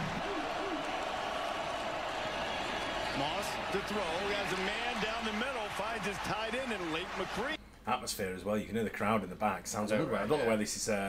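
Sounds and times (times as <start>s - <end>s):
stadium crowd din: 0.0s - 7.6s.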